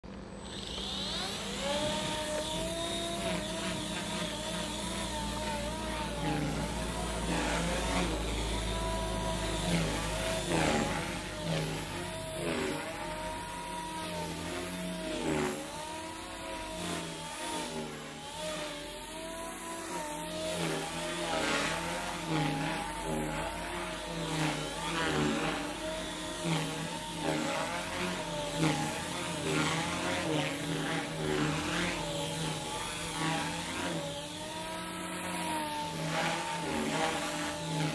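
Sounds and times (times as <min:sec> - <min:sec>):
rc helicopter rotor whine: 0:00.0 - 0:37.9.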